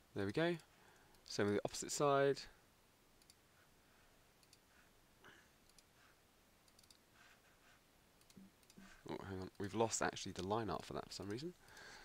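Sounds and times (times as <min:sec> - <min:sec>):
computer mouse clicks: 0:03.2 - 0:03.4, 0:04.4 - 0:04.6, 0:05.6 - 0:05.9, 0:06.6 - 0:07.0, 0:08.2 - 0:08.8.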